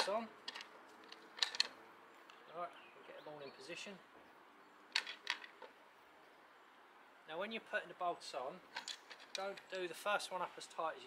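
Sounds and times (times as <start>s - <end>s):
metal bolts clicking: 0.0s - 1.8s.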